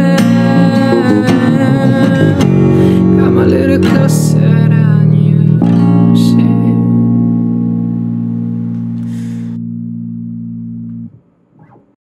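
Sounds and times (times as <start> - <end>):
acoustic guitar chord ringing: 0.0 - 11.2.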